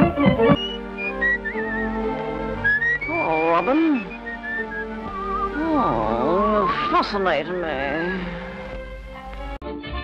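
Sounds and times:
held orchestral chords: 0.0s - 9.0s
high wavering whistle: 0.6s - 2.0s, 2.6s - 5.7s.

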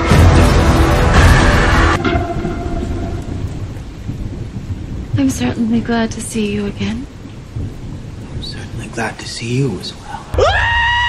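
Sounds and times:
steady rain: 0.0s - 11.0s
thunder rumbling: 0.0s - 11.0s.

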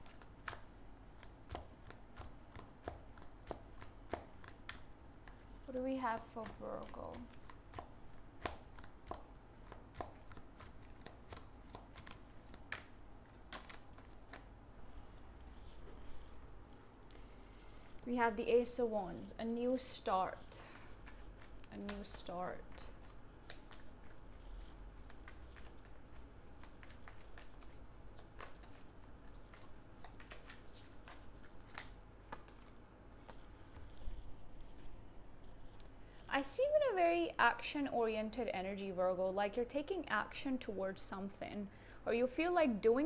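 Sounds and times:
cards being shuffled: 0.0s - 16.8s, 19.8s - 36.3s.

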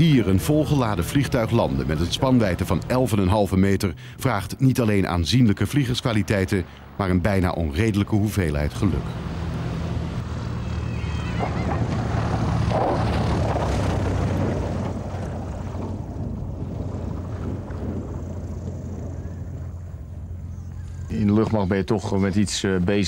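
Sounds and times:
airplane engine and propeller drone: 0.0s - 23.0s.

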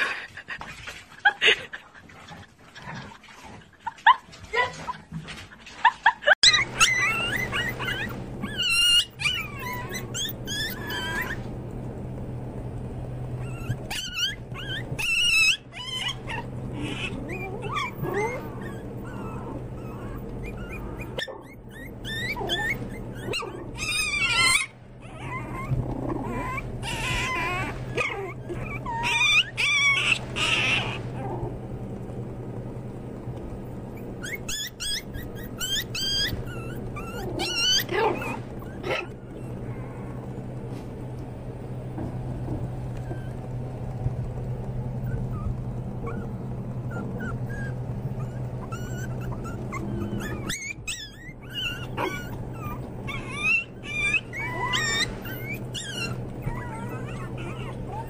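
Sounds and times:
puppies whimpering and yipping: 6.3s - 11.7s, 13.1s - 31.5s, 33.7s - 44.0s, 44.8s - 58.0s
steady low hum: 6.5s - 58.0s.

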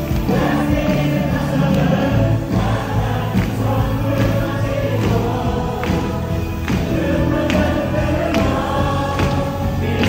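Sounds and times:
congregation singing: 0.0s - 10.0s
praise team singing into microphones: 0.0s - 10.0s.

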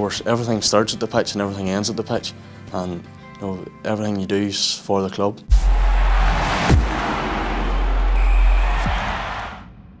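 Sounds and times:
sharp hit: 5.5s - 9.0s
falling boom: 5.5s - 10.0s.

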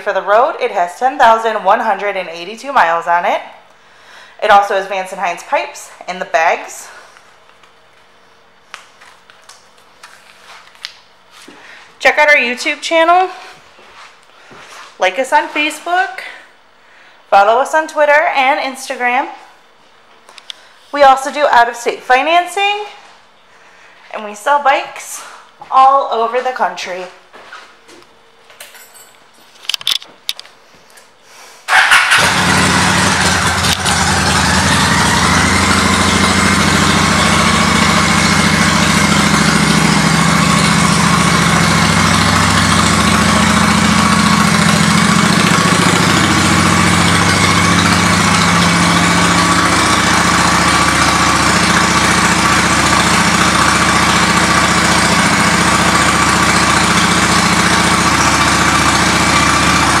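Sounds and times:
motorcycle engine starting and idling: 0.0s - 3.2s, 31.7s - 60.0s.

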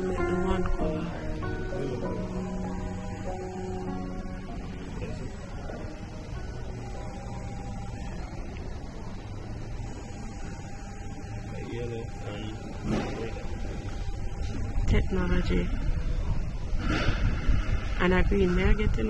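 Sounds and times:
guitar music: 0.0s - 9.2s.

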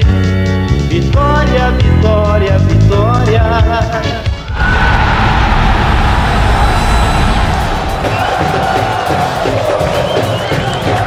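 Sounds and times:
sung music: 4.0s - 9.6s
stadium crowd roaring: 4.4s - 11.0s.

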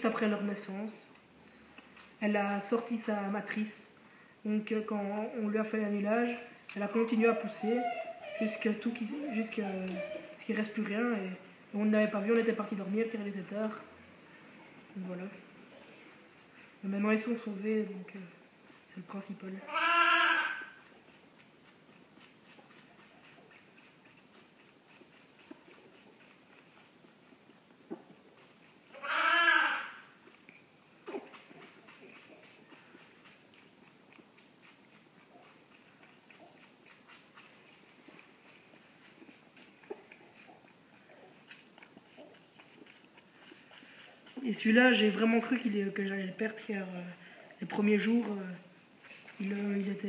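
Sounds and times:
lamb suckling from bottle: 17.5s - 50.0s
lamb bleating: 19.6s - 20.8s, 28.9s - 30.0s.

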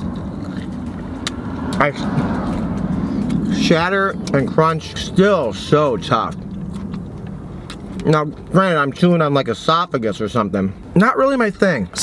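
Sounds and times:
chewing crunches: 0.0s - 4.6s, 6.0s - 8.5s
car engine idling hum: 0.0s - 12.0s.

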